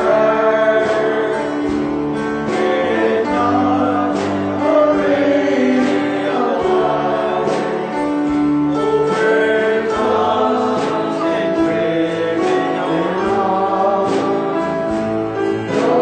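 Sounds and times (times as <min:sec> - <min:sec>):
accompanying instruments: 0:00.0 - 0:16.0
people singing gospel: 0:00.0 - 0:16.0.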